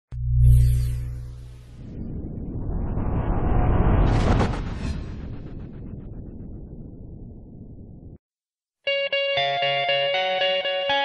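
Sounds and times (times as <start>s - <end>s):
rumbling sound effect riser: 0.2s - 8.2s.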